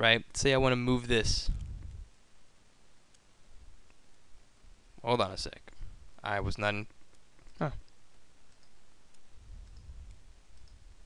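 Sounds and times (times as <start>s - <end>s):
faint low rumble: 1.0s - 11.0s
computer mouse clicks: 7.1s - 10.9s.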